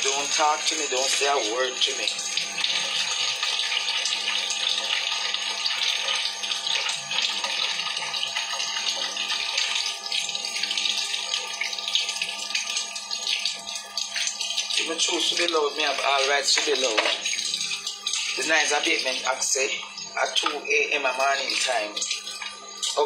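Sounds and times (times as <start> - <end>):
tap running water into sink: 0.0 - 23.0.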